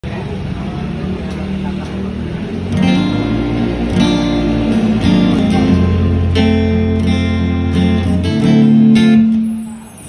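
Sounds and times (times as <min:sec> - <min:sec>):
indistinct talking: 0:00.0 - 0:10.0.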